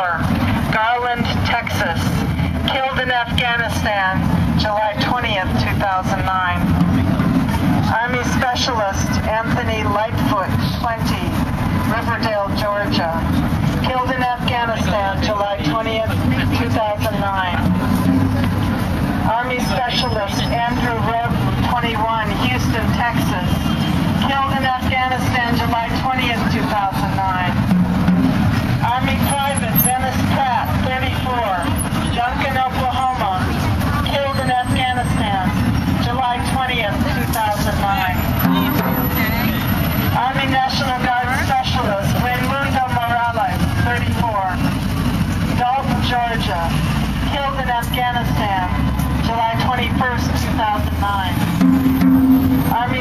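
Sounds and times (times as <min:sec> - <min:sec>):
people talking: 0:00.0 - 0:23.6, 0:24.2 - 0:27.7, 0:28.8 - 0:44.8, 0:45.5 - 0:51.5, 0:52.5 - 0:53.0
street traffic rumbling: 0:00.0 - 0:53.0.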